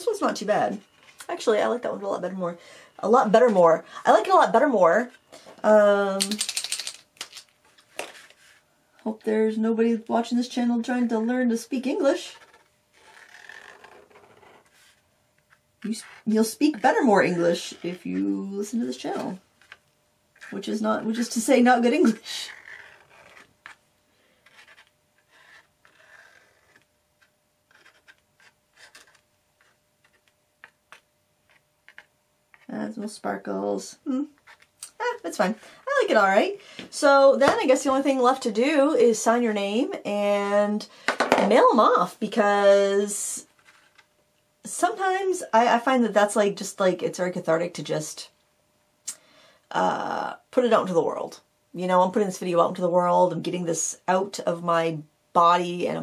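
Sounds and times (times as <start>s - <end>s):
paint pen ball rattling: 6.2s - 7.4s
marker scratching on paper: 24.4s - 32.7s.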